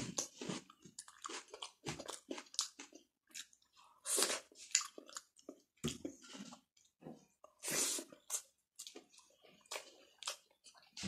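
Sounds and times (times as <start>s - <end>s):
person chewing food: 0.0s - 11.0s.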